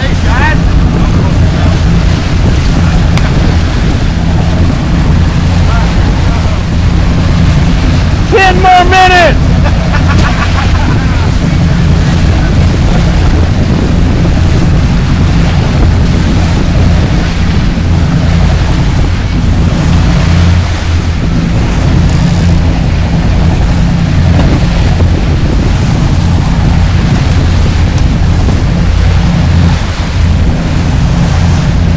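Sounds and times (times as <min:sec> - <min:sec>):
boat engines droning: 0:00.0 - 0:31.9
wake churning and rushing: 0:00.0 - 0:31.9
wind buffeting microphone: 0:00.0 - 0:31.9.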